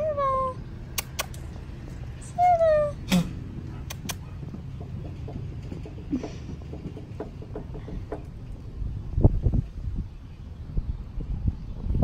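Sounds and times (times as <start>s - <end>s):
sharp clicks: 0.9s - 1.6s, 3.8s - 4.3s.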